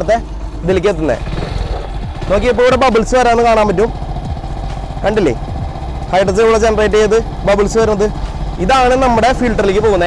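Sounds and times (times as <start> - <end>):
man talking: 0.0 - 1.3, 2.2 - 4.0, 6.1 - 10.0
motorcycle engine idling: 0.0 - 10.0.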